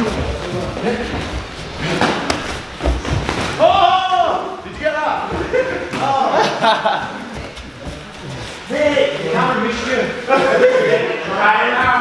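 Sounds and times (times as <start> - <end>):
feet on padded mats: 0.0 - 5.7.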